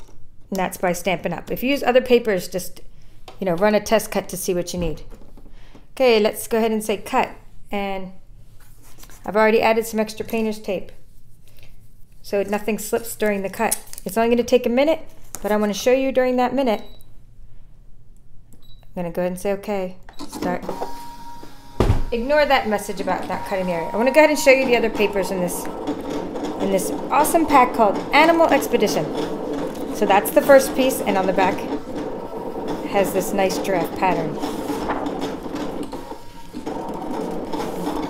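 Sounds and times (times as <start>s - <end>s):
cutting machine motors: 20.4s - 38.0s.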